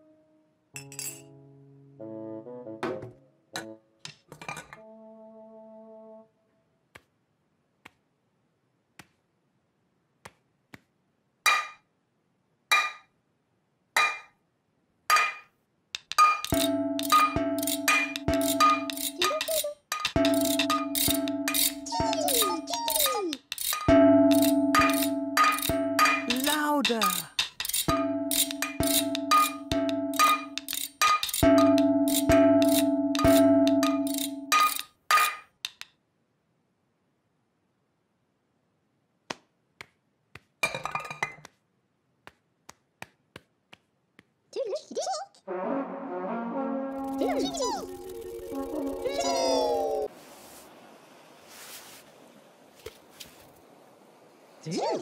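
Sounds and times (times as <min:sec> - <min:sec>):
metal saucepans clanging: 0:00.8 - 0:01.3, 0:03.6 - 0:04.8, 0:16.1 - 0:23.0, 0:23.6 - 0:35.5
held musical notes: 0:16.5 - 0:27.2, 0:45.5 - 0:50.1.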